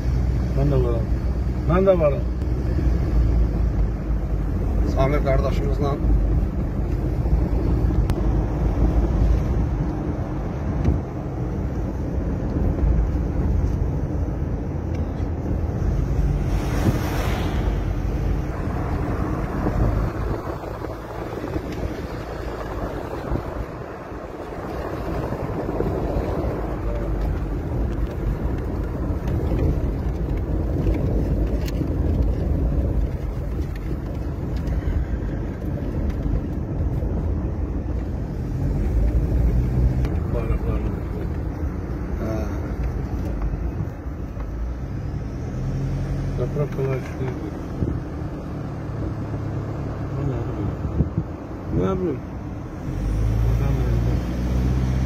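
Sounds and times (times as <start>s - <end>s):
car road noise: 0.0s - 55.0s
truck passing rush: 15.3s - 43.0s.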